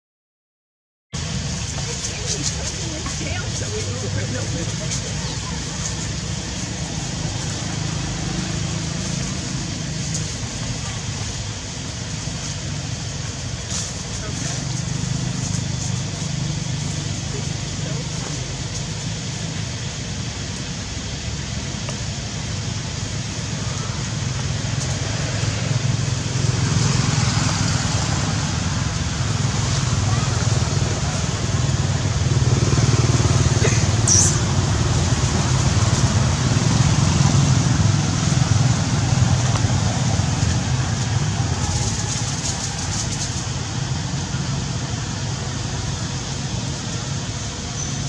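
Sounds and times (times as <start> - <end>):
steady low rumble: 1.2 - 47.8
hiss: 1.2 - 48.0.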